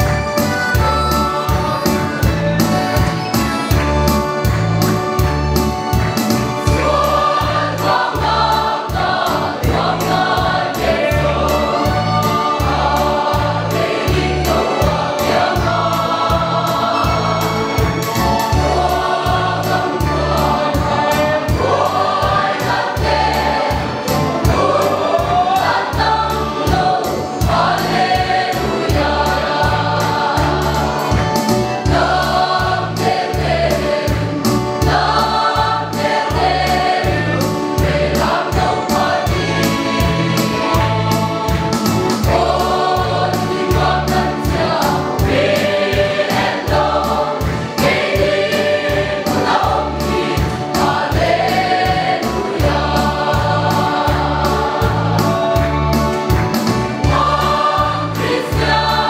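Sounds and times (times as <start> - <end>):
mixed choir singing a hymn: 0.0 - 59.0.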